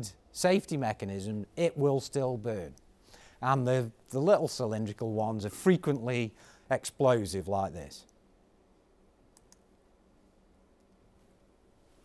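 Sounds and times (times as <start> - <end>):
computer mouse clicks: 9.3 - 9.7.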